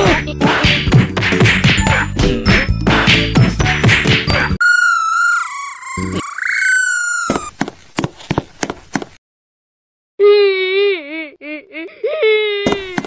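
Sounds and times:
high wavering whistle tone: 4.6 - 7.5.

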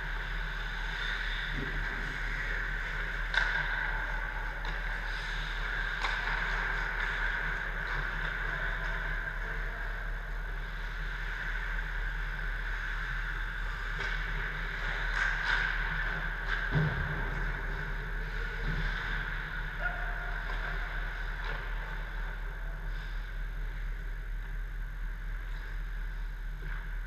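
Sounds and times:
hockey sticks and pucks clacking: 0.0 - 24.6
indoor ice arena hum: 0.0 - 27.0.

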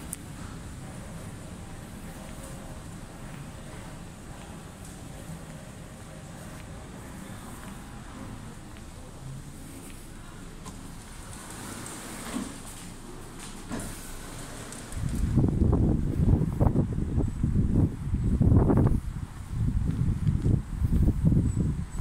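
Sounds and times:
wind buffeting microphone: 14.6 - 22.0.

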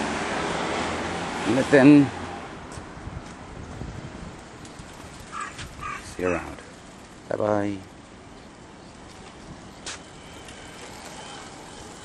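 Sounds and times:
street background noise: 0.0 - 12.0.

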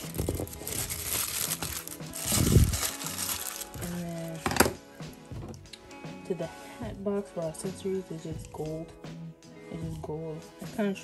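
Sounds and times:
tissue paper crinkling: 0.0 - 4.5
background music with held notes: 0.0 - 11.0.

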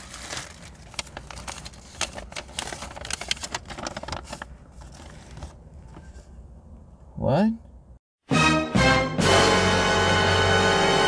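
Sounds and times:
paper bag crinkling: 0.0 - 5.6.

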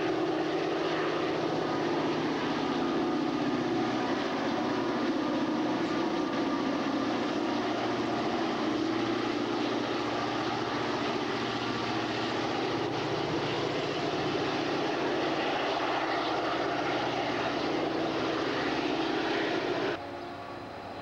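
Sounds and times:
diesel locomotive engine drone: 0.0 - 21.0
train rumble: 0.0 - 21.0.

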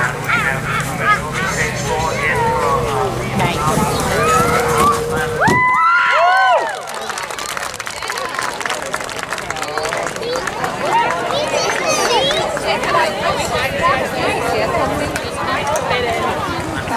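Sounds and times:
long held call: 0.0 - 16.5
crowd chatter: 0.0 - 16.9.

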